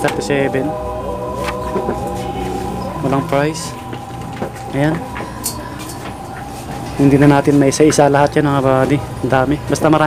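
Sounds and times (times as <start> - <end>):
busy shop background noise: 0.0 - 10.0
constant hum: 0.0 - 10.0.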